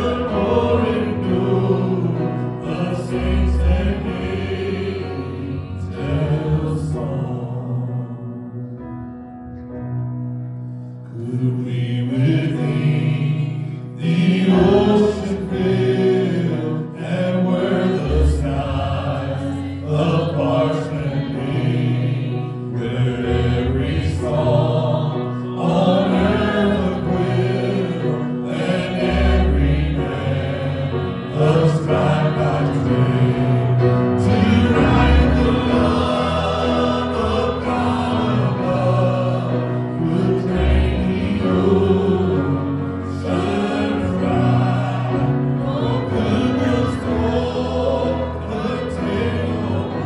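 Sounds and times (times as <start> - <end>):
voices singing slow notes: 0.0 - 8.7, 11.1 - 50.0.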